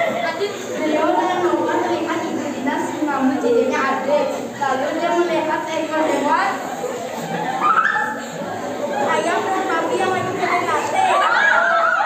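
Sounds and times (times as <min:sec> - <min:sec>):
children's voices over microphone: 0:00.0 - 0:12.0.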